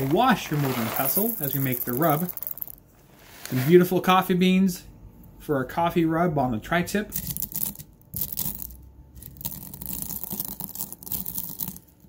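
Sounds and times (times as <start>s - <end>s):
coffee beans crushed with pestle: 0.0s - 2.8s, 7.1s - 12.0s.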